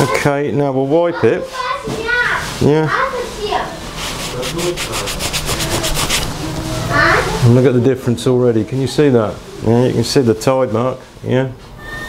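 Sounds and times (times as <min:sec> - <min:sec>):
cloth rubbing on axe head: 0:02.5 - 0:07.0.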